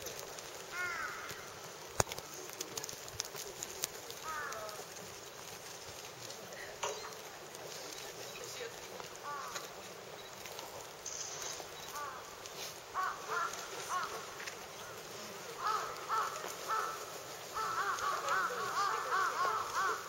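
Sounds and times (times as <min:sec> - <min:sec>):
crows cawing: 0:00.7 - 0:01.7, 0:04.2 - 0:05.0, 0:09.2 - 0:09.8, 0:11.9 - 0:20.0.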